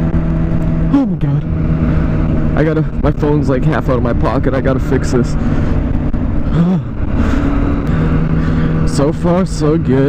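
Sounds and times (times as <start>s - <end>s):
motorcycle engine cruising: 0.0s - 10.0s
wind and road rush: 0.0s - 10.0s.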